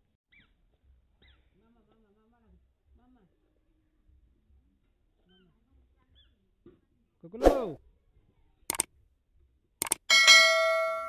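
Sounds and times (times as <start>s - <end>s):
sharp click: 9.8s - 10.1s
bright bell ding: 10.1s - 11.0s.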